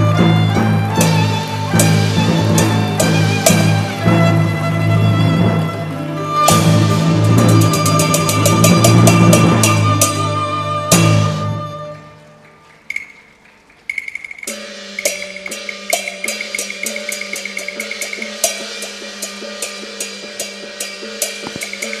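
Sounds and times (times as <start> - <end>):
opera percussion strokes: 0.0 - 22.0
held ringing tone: 13.9 - 22.0.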